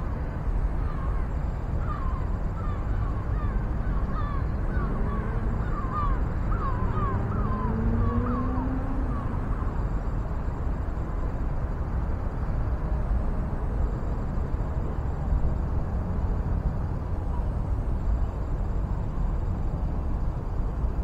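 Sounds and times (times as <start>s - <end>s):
faint hum rising in pitch: 0.0s - 21.0s
bird calling: 0.8s - 9.8s.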